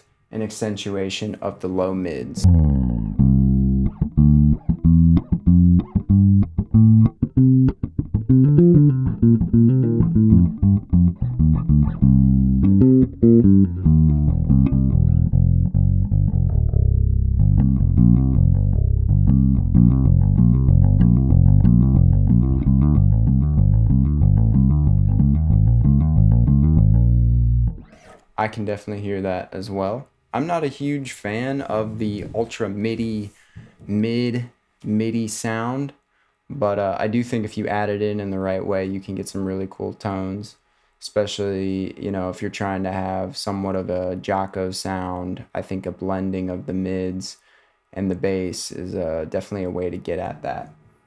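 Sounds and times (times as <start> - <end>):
electric bass plucked notes: 2.3 - 28.2.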